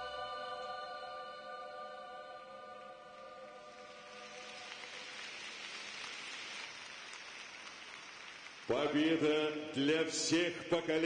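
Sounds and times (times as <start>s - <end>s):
audience applauding: 3.5s - 9.4s.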